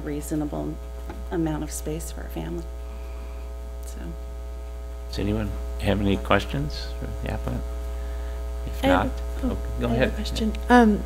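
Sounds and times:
low electrical mains hum: 0.0 - 11.0
person speaking a word: 8.7 - 10.4.

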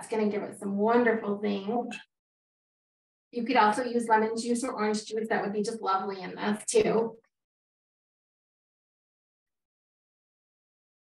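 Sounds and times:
woman's voice: 0.0 - 2.0, 3.4 - 7.1.

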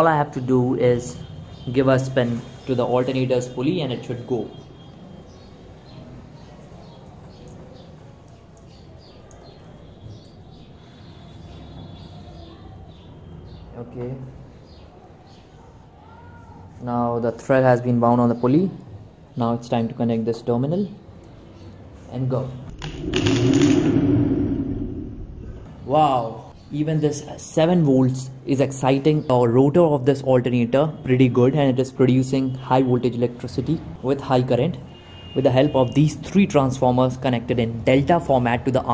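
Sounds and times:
small birds chirping: 3.6 - 16.7
alternator rotor whirring: 22.7 - 25.6.

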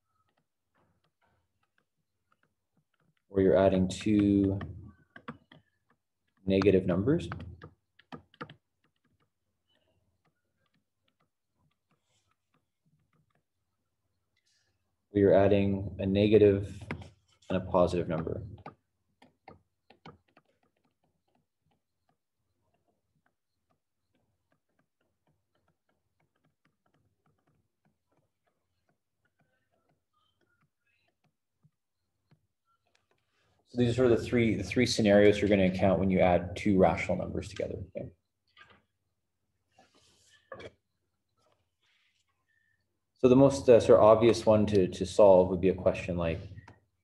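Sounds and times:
stylus tapping on tablet screen: 0.0 - 14.5, 16.8 - 33.6.

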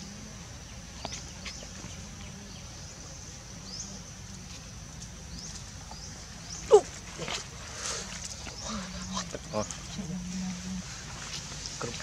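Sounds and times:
short monkey calls: 6.7 - 7.4.

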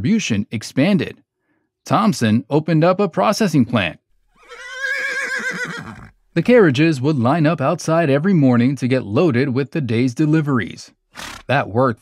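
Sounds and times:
horse whinnying: 4.2 - 6.3, 11.1 - 11.5.

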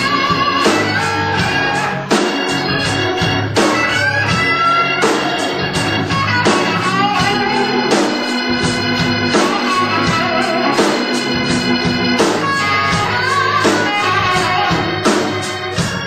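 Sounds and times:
drums: 0.0 - 16.0
electric guitar: 0.0 - 16.0
organ: 0.0 - 16.0.

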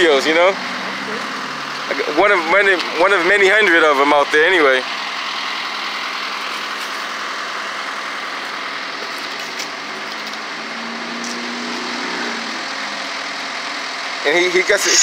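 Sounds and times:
diesel engines idling: 0.0 - 15.0.

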